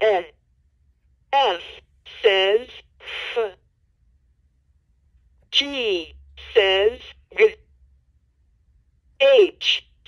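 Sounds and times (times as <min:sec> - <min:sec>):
toy voice through small speaker: 0:00.0 - 0:00.4, 0:01.4 - 0:03.6, 0:05.6 - 0:07.6, 0:09.2 - 0:10.0.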